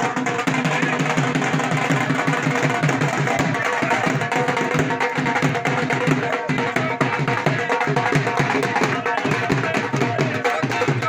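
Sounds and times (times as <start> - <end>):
barrel drums beating: 0.0 - 11.0.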